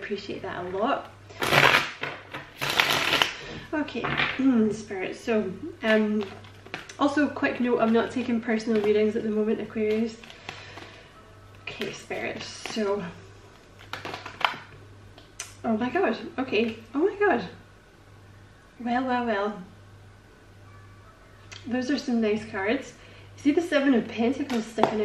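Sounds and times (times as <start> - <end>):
low steady hum: 0.0 - 25.0
cards being shuffled: 1.4 - 3.4, 5.9 - 11.0, 11.6 - 13.0, 13.6 - 14.6.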